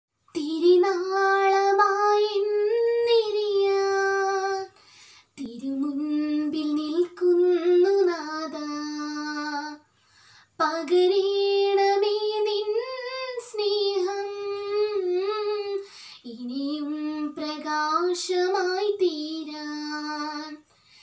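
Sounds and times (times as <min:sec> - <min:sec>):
girl singing unaccompanied: 0:00.3 - 0:21.0.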